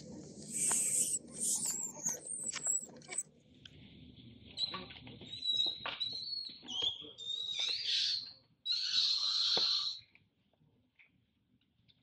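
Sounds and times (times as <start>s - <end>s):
monkeys screaming: 0.4s - 3.2s, 7.9s - 10.0s.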